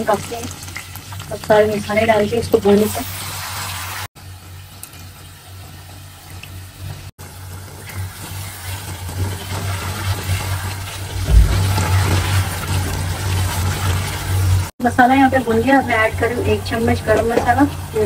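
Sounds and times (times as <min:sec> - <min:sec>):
food sizzling in a pot: 0:00.0 - 0:18.0.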